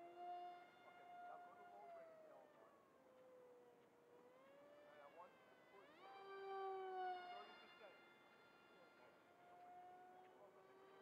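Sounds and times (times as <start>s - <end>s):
electric motor whine with propeller: 0.0s - 2.2s, 4.1s - 11.0s.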